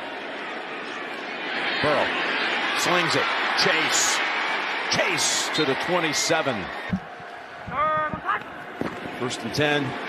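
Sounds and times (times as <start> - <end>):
stadium crowd noise: 0.0 - 10.0.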